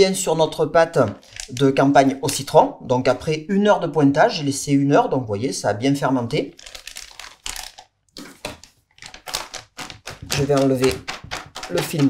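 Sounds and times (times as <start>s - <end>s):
plastic film crinkling: 6.5s - 12.0s.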